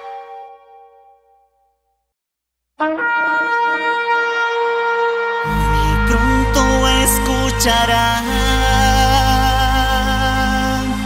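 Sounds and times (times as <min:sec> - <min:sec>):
loud horn blast: 0:02.8 - 0:11.0.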